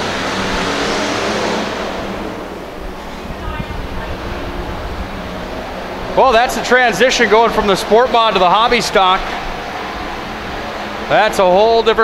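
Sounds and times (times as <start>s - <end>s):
race car engines running: 0.0s - 12.0s.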